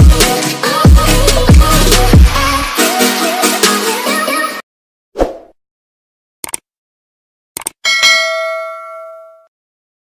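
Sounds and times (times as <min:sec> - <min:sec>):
bell ding: 0:07.8 - 0:09.5.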